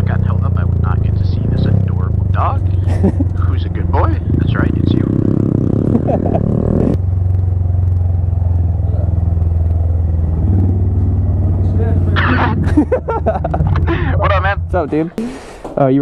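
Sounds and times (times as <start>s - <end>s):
motorcycle engine idling: 0.0s - 12.2s.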